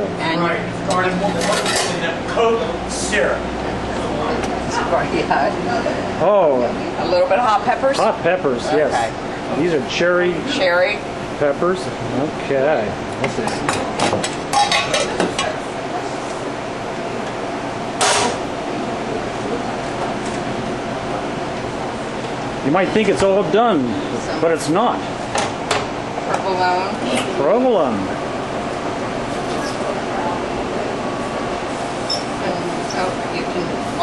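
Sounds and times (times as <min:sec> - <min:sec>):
steady background hum: 0:00.0 - 0:34.0.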